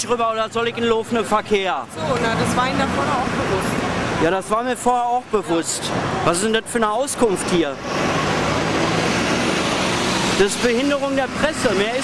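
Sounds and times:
vehicle engine and tyre noise: 0.0 - 12.0.

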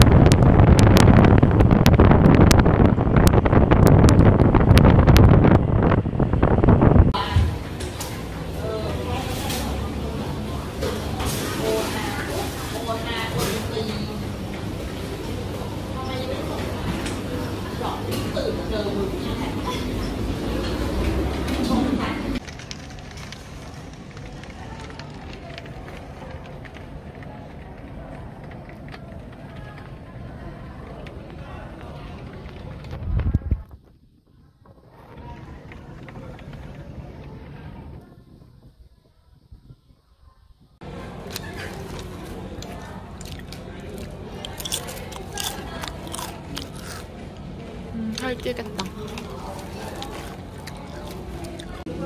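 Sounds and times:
wind buffeting microphone: 0.0 - 7.6, 32.3 - 34.3
raindrops ticking on window glass: 22.4 - 32.9.

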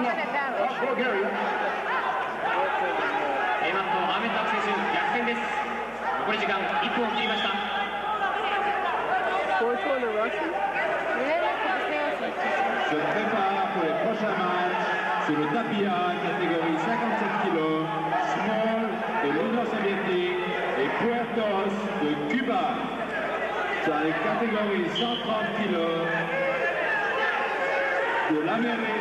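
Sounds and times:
murmur of crowd chatter: 0.0 - 29.0.

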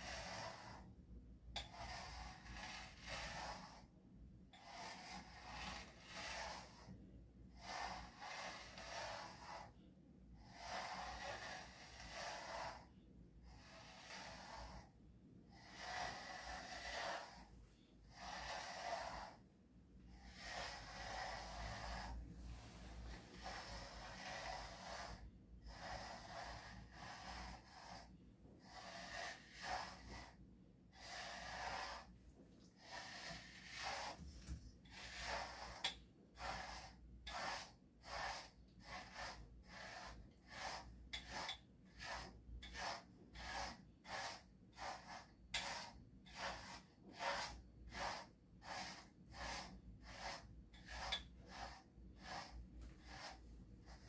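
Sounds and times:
brush stroking dog fur: 0.0 - 0.9, 1.6 - 3.9, 4.6 - 7.0, 7.6 - 9.8, 10.5 - 12.9, 13.5 - 14.9, 15.5 - 19.4, 20.1 - 54.0.

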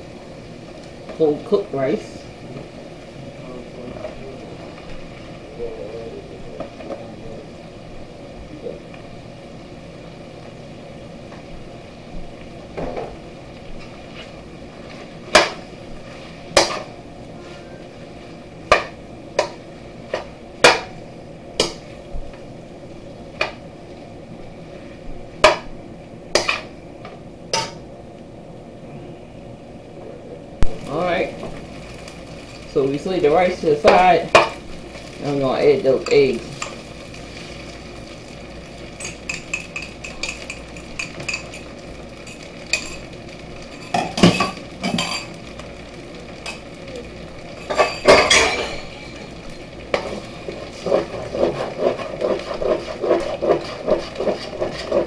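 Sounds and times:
spatula stirring rice in a wok: 11.3 - 22.4, 23.2 - 27.8, 31.3 - 55.0
spatula clanking on pan: 16.6 - 16.9, 18.7 - 21.0, 27.5 - 27.8, 33.8 - 34.6, 39.0 - 41.7, 42.3 - 43.0, 43.8 - 45.4, 47.6 - 50.2.

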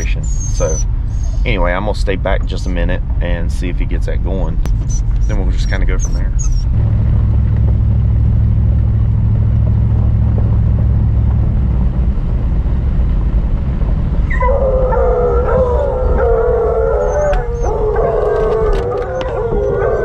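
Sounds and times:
hounds howling: 0.0 - 1.7, 14.3 - 20.0
truck rumbling on dirt road: 0.0 - 20.0.

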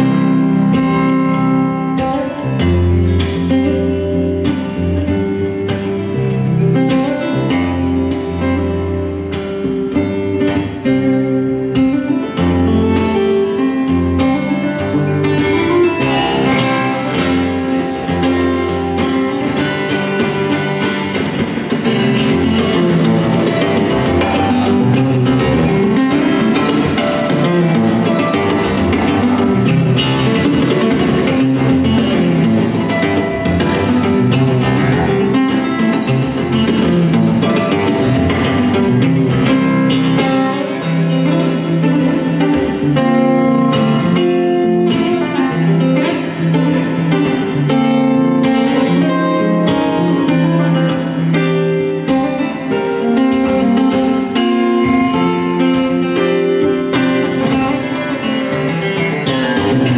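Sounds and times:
fingerstyle acoustic guitar: 0.0 - 59.9.

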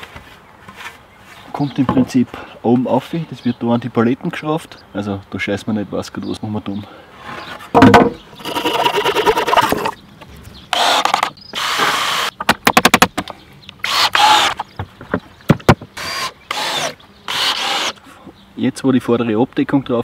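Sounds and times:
cordless drill driving screws: 10.7 - 12.3, 13.8 - 14.6, 16.0 - 18.0.

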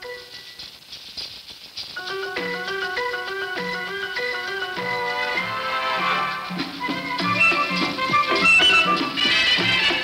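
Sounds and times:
maracas shaking: 0.0 - 10.0.

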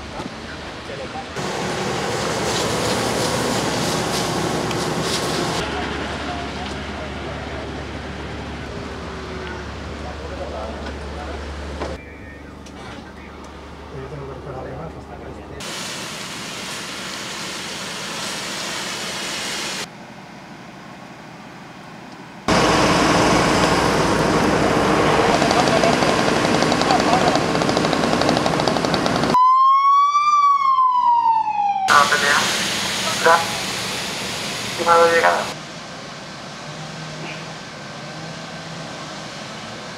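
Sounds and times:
loud steady rushing noise: 0.0 - 9.4, 22.5 - 29.4, 31.9 - 39.9
indistinct outdoor sound: 0.0 - 29.4, 31.9 - 39.9
siren wailing: 29.4 - 33.6.

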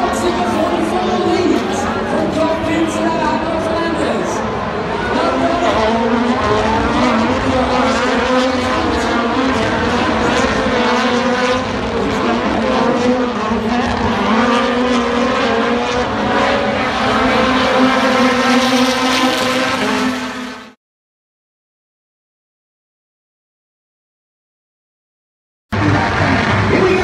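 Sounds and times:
race car engines revving: 0.0 - 20.8, 25.7 - 27.0.

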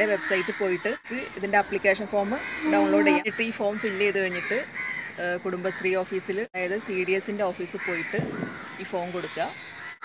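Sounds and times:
woman talking: 0.0 - 8.2, 8.8 - 9.5.

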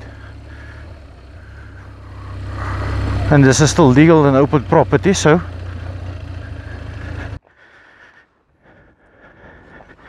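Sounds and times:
motorcycle engine running: 0.0 - 7.6.

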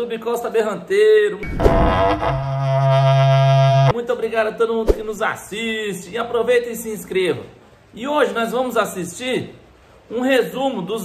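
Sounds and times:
horn blown in long low note: 1.4 - 4.0
short whoosh: 4.9 - 5.2.

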